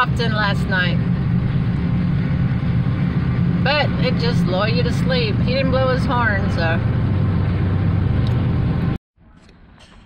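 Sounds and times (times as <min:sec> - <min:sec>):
freight train rumbling past: 0:00.0 - 0:09.0.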